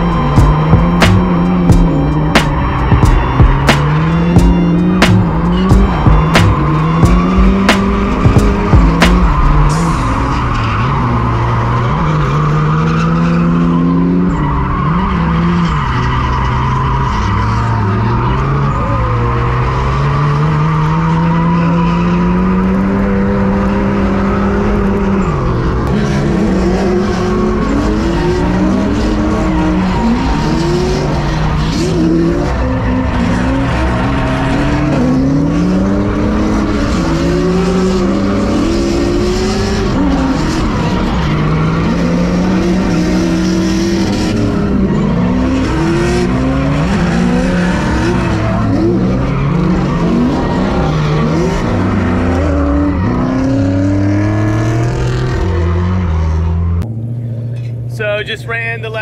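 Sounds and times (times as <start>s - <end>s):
car engine revving: 0.0s - 59.0s
tyres skidding and squealing: 0.0s - 59.0s.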